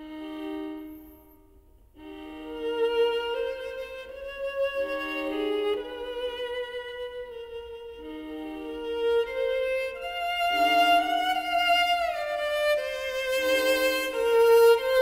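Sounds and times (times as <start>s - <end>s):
violas playing sustained chords: 0.0s - 15.0s.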